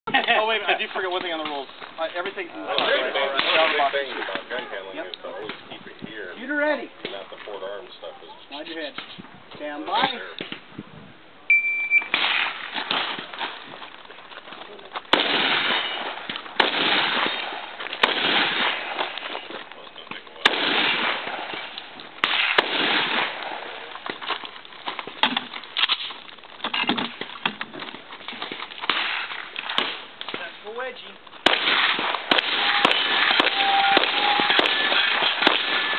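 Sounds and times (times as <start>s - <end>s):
shotgun shots echoing: 2.8s - 4.4s, 12.1s - 13.5s, 15.1s - 19.5s, 20.4s - 23.9s, 28.8s - 30.5s, 31.4s - 35.9s.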